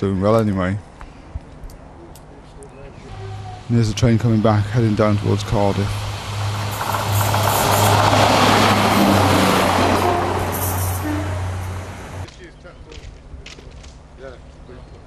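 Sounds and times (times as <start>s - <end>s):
faint outdoor background: 0.0s - 15.0s
diesel train engine drone: 2.8s - 12.3s
train wheels on rails: 4.6s - 12.3s.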